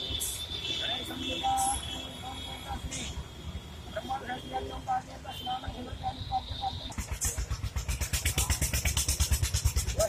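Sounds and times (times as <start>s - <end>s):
small engine running: 6.9s - 10.0s.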